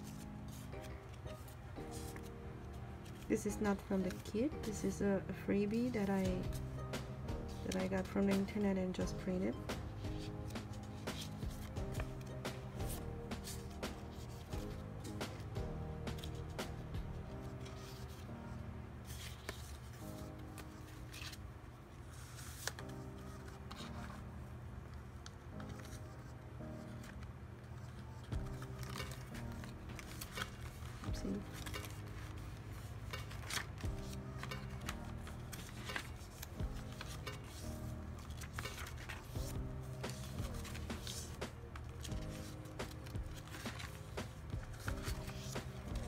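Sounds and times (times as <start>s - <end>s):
paper pages turning: 0.0s - 5.0s, 5.6s - 8.6s, 9.5s - 46.0s
background music: 0.0s - 46.0s.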